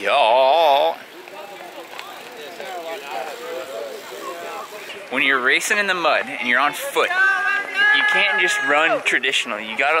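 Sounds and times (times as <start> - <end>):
people talking and calling out: 0.0 - 10.0
nearby shouting: 6.3 - 9.2.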